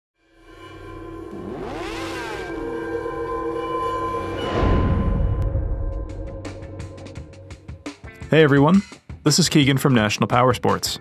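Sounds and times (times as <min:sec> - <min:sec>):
music drone: 0:00.3 - 0:08.0
pitch gliding sound effect: 0:00.5 - 0:07.2.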